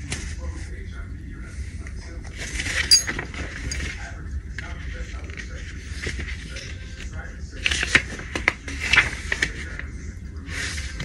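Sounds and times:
paper rustling: 0:07.6 - 0:09.9.

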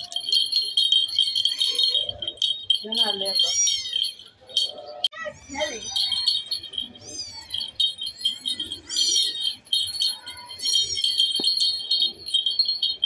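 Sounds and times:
steady high ringing tone: 0:00.0 - 0:13.0
kittens mewing: 0:03.4 - 0:11.7.

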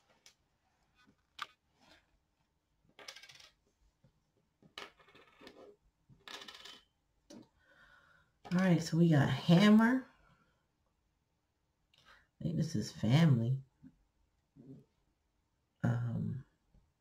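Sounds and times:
small tokens clicking on a table: 0:03.0 - 0:03.6, 0:04.7 - 0:07.5.

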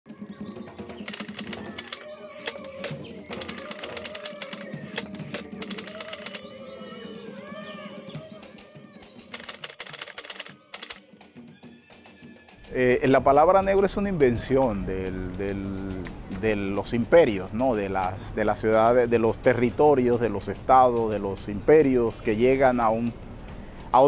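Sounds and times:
soft background music: 0:00.1 - 0:24.0
typewriter keys clattering: 0:01.1 - 0:06.4, 0:09.3 - 0:11.0.

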